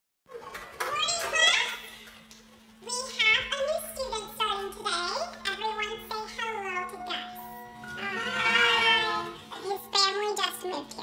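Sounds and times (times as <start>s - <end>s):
children chattering and calling out: 3.6s - 10.3s.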